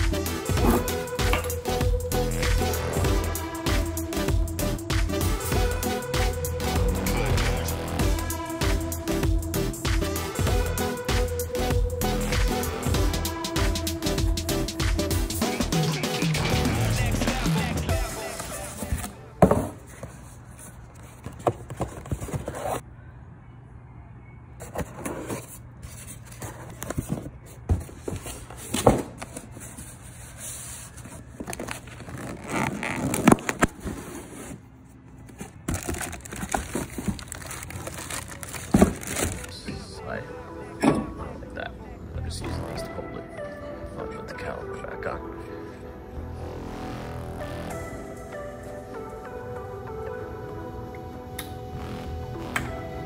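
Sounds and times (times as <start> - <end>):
background music: 0.0 - 19.7, 37.2 - 53.0
cardboard box rustling: 18.6 - 22.8, 24.6 - 39.6.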